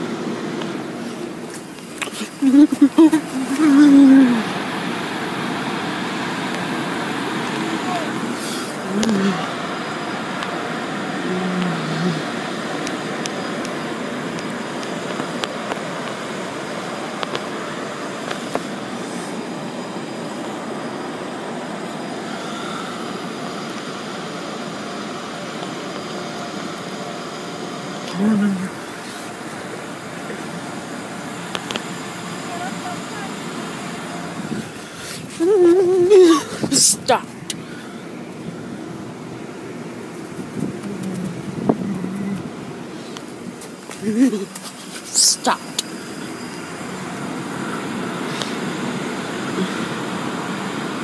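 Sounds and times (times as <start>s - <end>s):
short voice sounds: 2.1s - 4.5s
water spraying against car windows: 39.8s - 46.1s.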